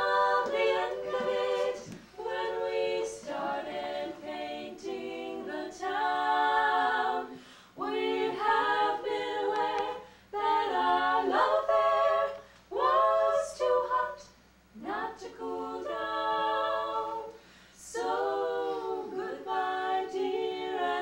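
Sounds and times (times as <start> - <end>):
voices singing in close harmony: 0.0 - 21.0.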